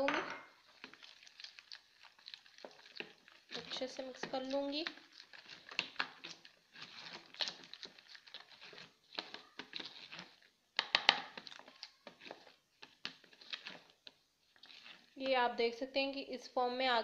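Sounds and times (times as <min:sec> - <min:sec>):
spoon scraping batter in bowl: 0:00.6 - 0:15.5.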